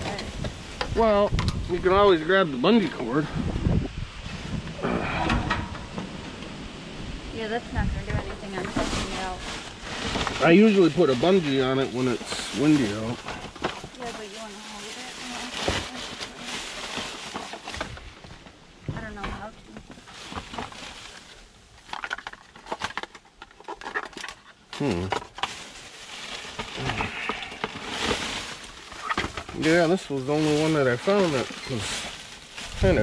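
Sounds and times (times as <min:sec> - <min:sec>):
plastic bags rustling and crinkling: 0:04.2 - 0:33.0
knocks and clatters of items: 0:26.4 - 0:29.9.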